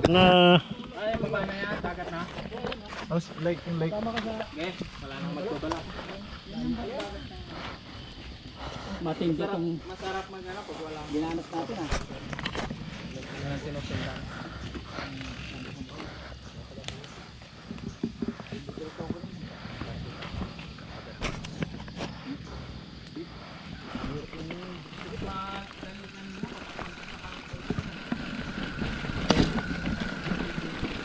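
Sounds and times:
tyres rumbling on dirt: 0.0s - 31.0s
bike frame rattling: 9.8s - 31.0s.

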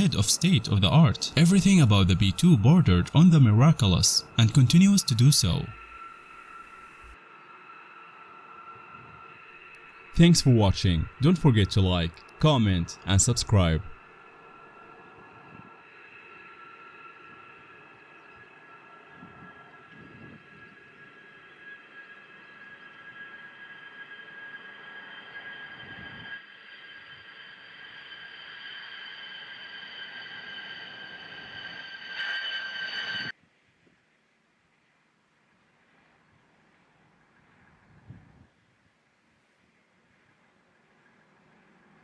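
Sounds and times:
jet engines whining: 0.0s - 33.3s.

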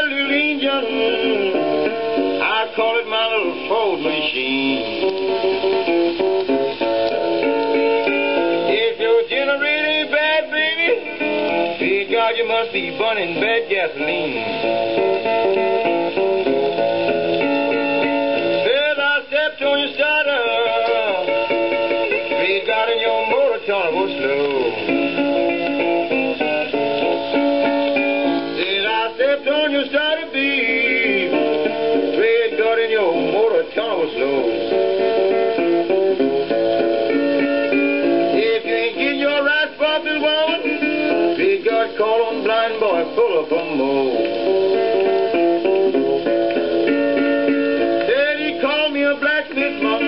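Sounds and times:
old record of blues guitar: 0.0s - 50.0s.

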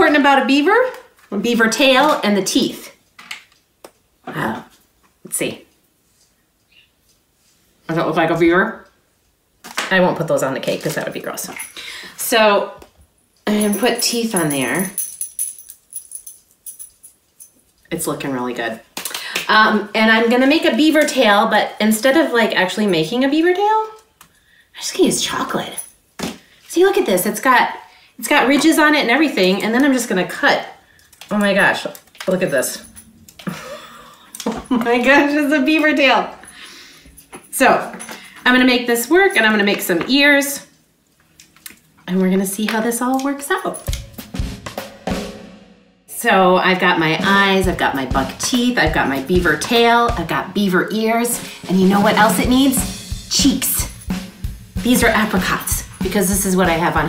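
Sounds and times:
drum and cymbal hits: 43.9s - 46.0s, 47.2s - 50.6s, 51.3s - 57.0s.

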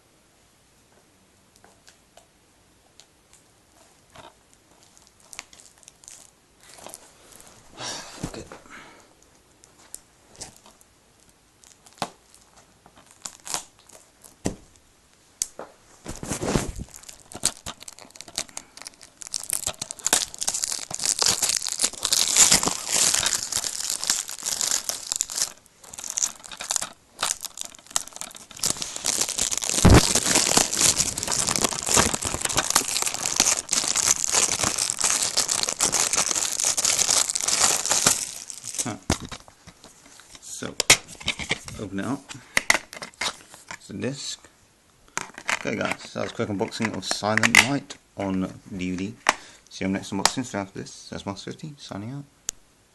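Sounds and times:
shrink-wrap crinkling and tearing: 4.2s - 7.0s, 11.6s - 14.5s, 16.1s - 41.9s, 42.5s - 43.8s.

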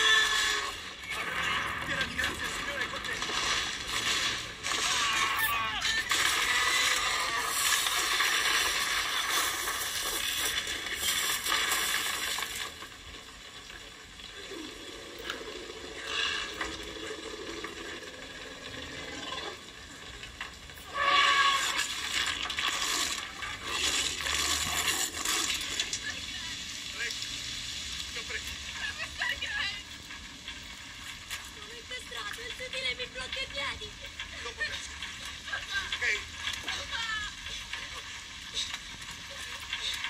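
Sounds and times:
wooden hut crashing and splintering: 0.0s - 13.4s
heavy rain: 0.0s - 40.0s.

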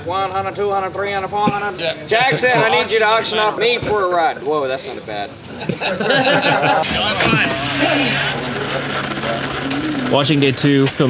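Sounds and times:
steady low hum: 6.5s - 10.5s
person speaking: 6.8s - 8.6s.

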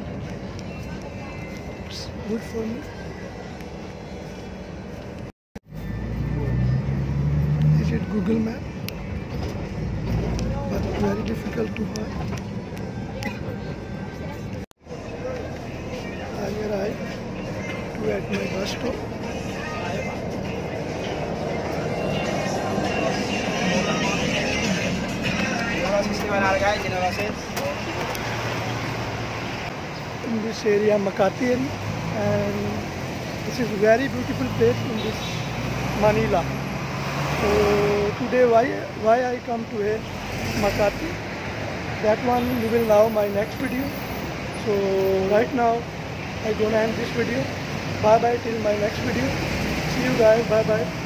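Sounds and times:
bus engine and road rumble: 0.0s - 51.0s
street traffic: 0.0s - 51.0s
bus engine idling: 8.2s - 29.7s.

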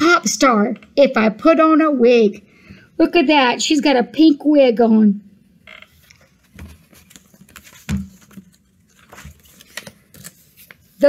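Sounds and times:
book pages rustling: 5.9s - 11.0s
book thump: 7.7s - 8.5s.

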